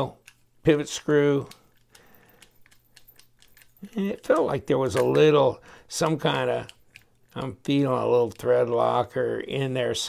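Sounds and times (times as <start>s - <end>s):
screwdriver bit clicking: 1.4s - 5.2s.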